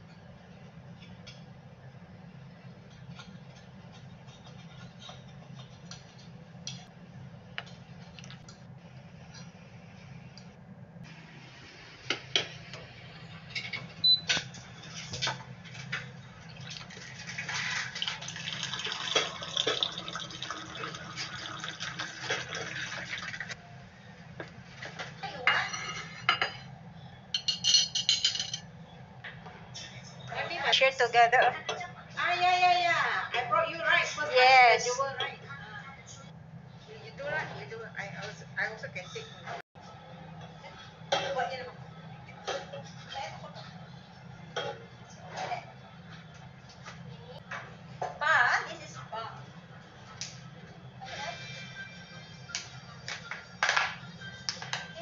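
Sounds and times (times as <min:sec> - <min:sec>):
dishes and cutlery clinking: 0:02.8 - 0:06.9, 0:13.4 - 0:16.9, 0:24.8 - 0:26.7, 0:27.3 - 0:28.7, 0:40.4 - 0:41.5, 0:42.4 - 0:43.2, 0:44.5 - 0:45.7
hot water running from dispenser: 0:16.4 - 0:23.6.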